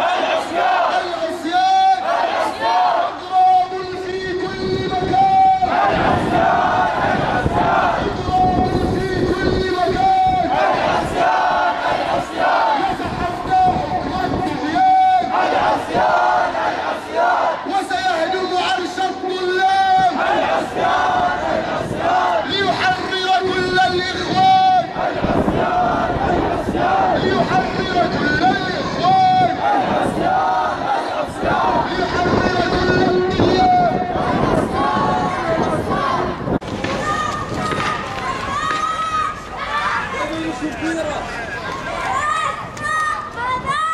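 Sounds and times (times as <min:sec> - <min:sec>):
people shouting long calls: 0:00.0 - 0:03.8
crowd chanting slogans: 0:00.0 - 0:42.3
hurried footsteps on street: 0:33.4 - 0:43.8.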